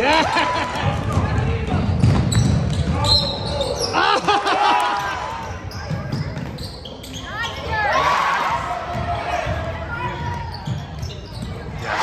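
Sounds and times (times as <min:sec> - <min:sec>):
crowd noise: 0:00.0 - 0:12.0
voices echoing: 0:00.8 - 0:12.0.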